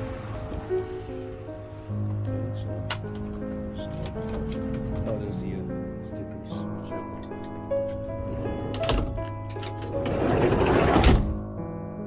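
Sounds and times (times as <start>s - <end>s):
background music: 0.0s - 12.0s
sliding door rattling shut: 7.0s - 11.5s
door slam: 7.4s - 11.5s.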